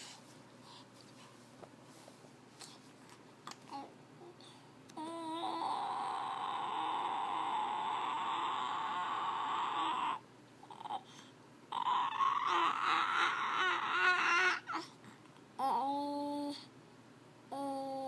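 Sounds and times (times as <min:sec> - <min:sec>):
baby crying breathily: 0:05.0 - 0:15.0.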